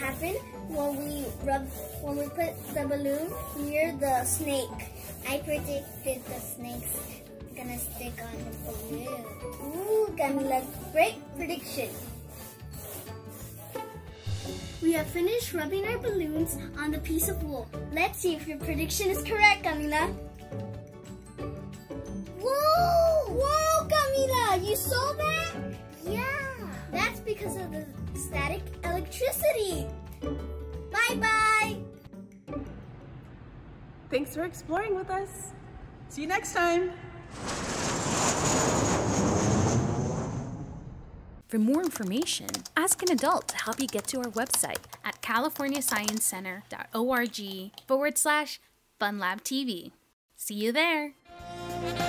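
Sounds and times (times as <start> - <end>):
balloons rubbed against cloth: 0.0 - 14.1
background music: 0.0 - 37.1, 50.8 - 52.0
steady rushing whoosh: 37.1 - 41.4.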